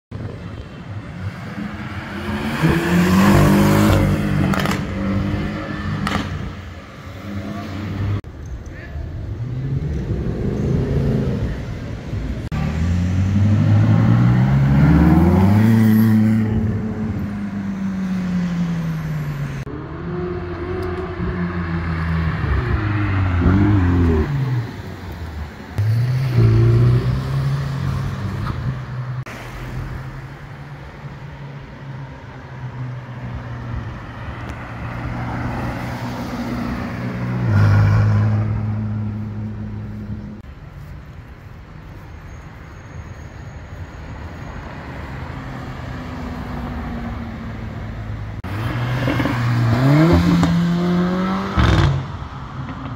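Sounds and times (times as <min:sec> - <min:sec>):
car engines accelerating hard: 0:00.3 - 0:08.3, 0:09.2 - 0:25.0, 0:45.1 - 0:52.9
engine revving: 0:01.7 - 0:06.6, 0:48.4 - 0:52.1.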